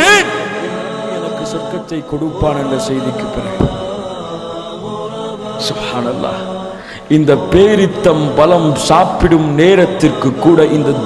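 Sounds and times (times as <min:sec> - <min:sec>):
man chanting through microphone: 0:00.0 - 0:04.2, 0:05.4 - 0:11.0.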